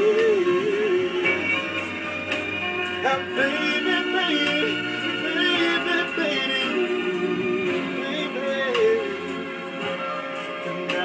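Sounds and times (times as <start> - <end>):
man singing a slow ballad: 0.0 - 1.8, 3.0 - 9.5
backing music track: 0.0 - 11.0.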